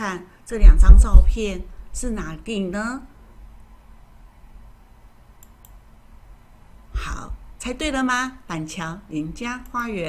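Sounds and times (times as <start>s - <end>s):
low room hum: 0.0s - 10.0s
faint short clicks: 5.4s - 5.8s.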